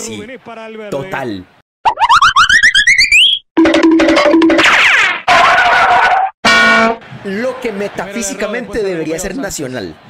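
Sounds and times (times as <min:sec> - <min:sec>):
wavering voice-like cry: 0:05.3 - 0:06.3.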